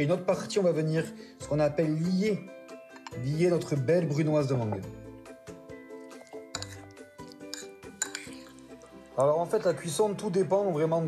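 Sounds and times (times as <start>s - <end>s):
background music with sustained notes: 0.0s - 11.0s
metal spoon clinking ceramic bowl: 2.9s - 3.9s, 6.0s - 9.8s.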